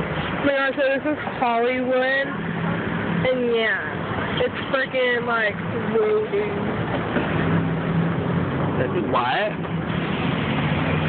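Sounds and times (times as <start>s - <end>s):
low engine hum: 0.0s - 11.0s
passing cars: 0.0s - 11.0s.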